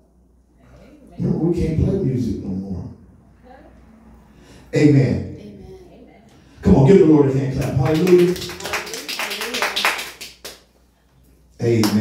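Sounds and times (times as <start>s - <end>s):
scattered hand claps: 7.6s - 10.7s.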